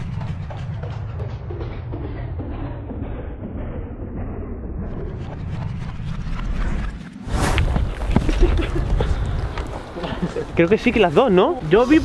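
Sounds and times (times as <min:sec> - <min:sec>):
outdoor sounds: 0:00.0 - 0:12.0.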